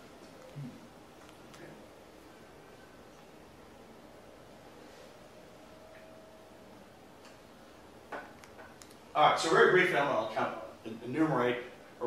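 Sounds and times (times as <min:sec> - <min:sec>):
soft clicks: 0:08.4 - 0:09.0.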